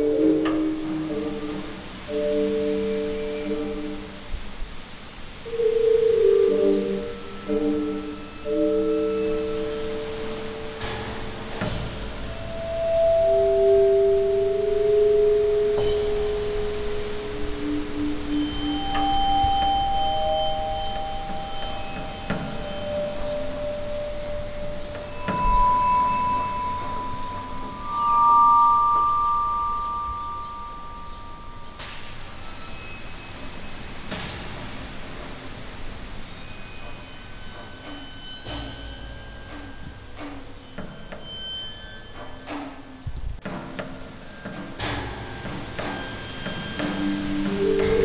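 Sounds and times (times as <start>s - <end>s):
slow ambient music: 0.0s - 48.0s.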